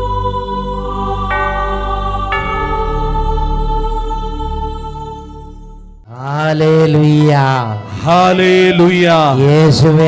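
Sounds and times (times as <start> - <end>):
held chord background music: 0.0 - 10.0
man chanting into a microphone: 6.1 - 10.0.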